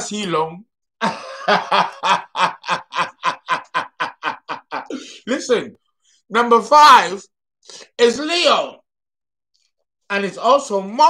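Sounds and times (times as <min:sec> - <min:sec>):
man laughing hard: 0:01.0 - 0:05.2.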